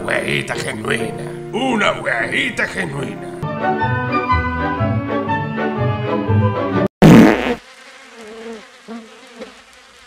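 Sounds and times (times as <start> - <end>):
fly buzzing: 7.0 - 10.0.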